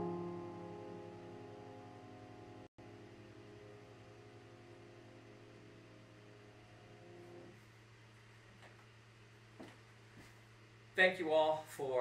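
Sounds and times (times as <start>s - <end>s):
grand piano chord ringing: 0.0s - 7.5s
faint low hum: 0.0s - 12.0s.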